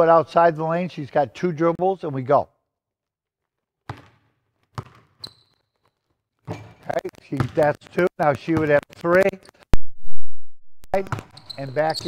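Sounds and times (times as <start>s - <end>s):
basketball bouncing on wooden floor: 3.9s - 5.3s, 7.4s - 7.6s
sneaker squeak: 4.8s - 6.8s, 11.1s - 12.0s.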